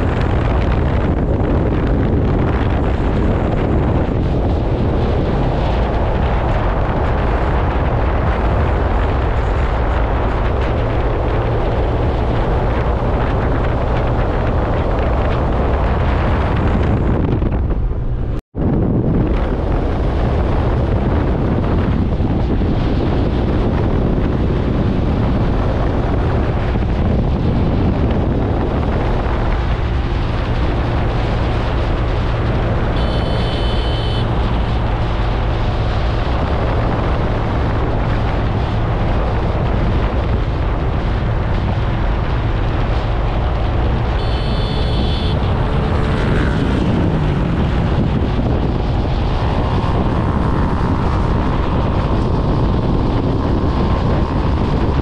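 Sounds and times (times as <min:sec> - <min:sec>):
wind buffeting microphone: 0:00.0 - 0:55.0
motorcycle engine running: 0:27.6 - 0:35.8, 0:36.4 - 0:55.0
high-pitched tones: 0:33.0 - 0:34.3, 0:44.2 - 0:45.6.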